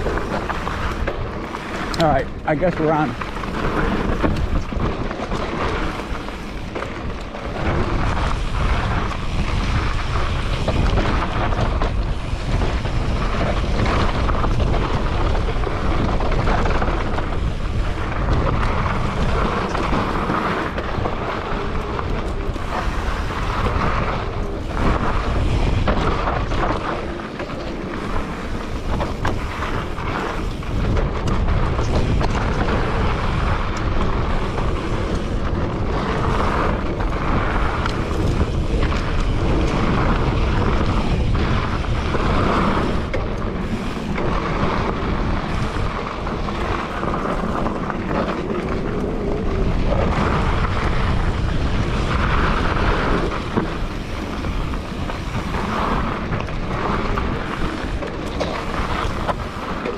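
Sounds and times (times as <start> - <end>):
bike knocking and rattling: 0.0 - 59.9
tyres on loose gravel trail: 0.0 - 59.9
wind rumble on microphone: 0.0 - 59.9.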